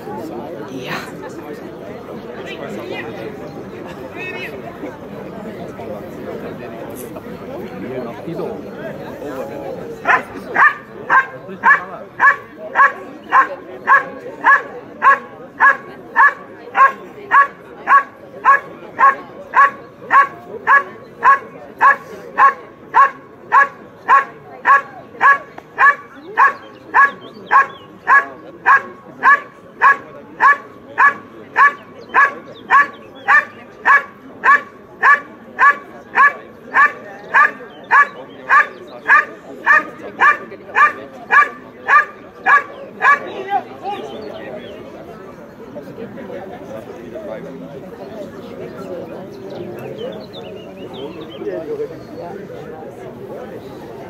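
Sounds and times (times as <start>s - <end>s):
dog barking: 10.0s - 43.3s.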